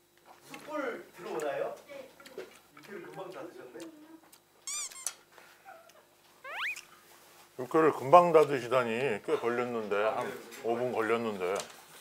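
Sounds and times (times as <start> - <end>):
warbling comedy sound effect: 6.4 - 6.9.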